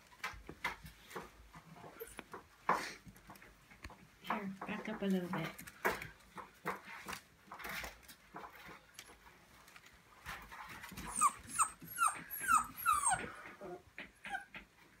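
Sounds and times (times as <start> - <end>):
rustling in wicker basket: 0.0 - 11.9
puppies squealing: 11.0 - 14.6.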